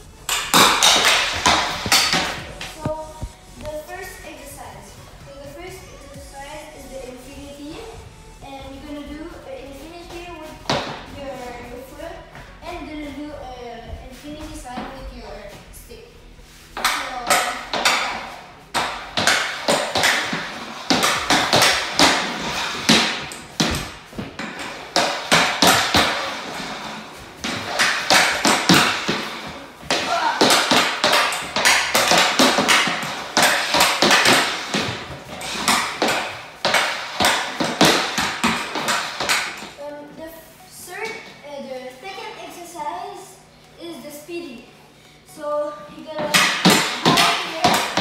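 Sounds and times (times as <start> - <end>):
hockey stick clacking on ball: 0.3 - 3.8, 16.8 - 39.7, 46.2 - 48.0.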